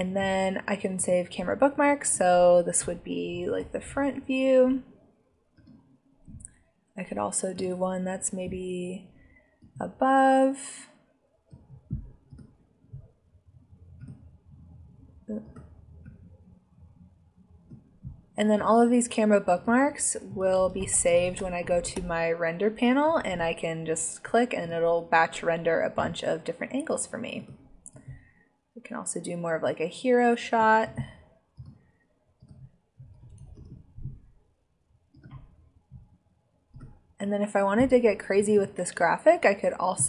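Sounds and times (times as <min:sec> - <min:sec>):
low thud-like rumble: 0:07.6 - 0:08.9, 0:18.0 - 0:24.0.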